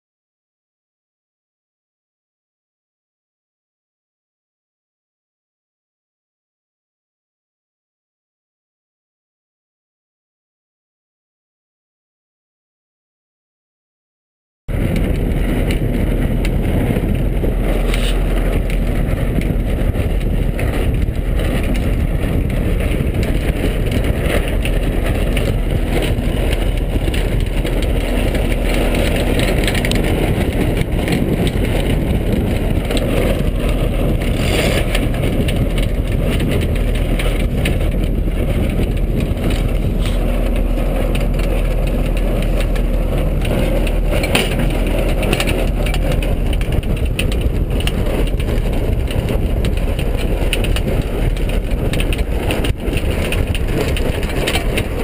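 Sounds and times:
wind buffeting microphone: 0:14.7 - 0:55.0.

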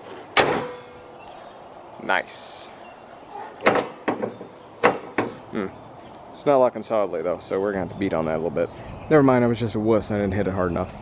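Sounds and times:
car hood slamming shut: 0:00.4 - 0:01.0.

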